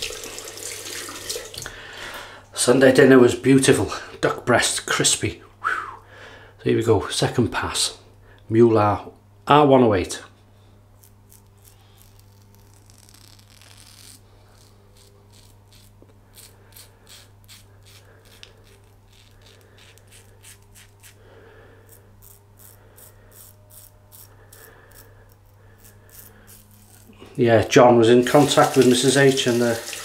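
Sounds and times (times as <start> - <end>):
razor scraping stubble: 10.9 - 29.7.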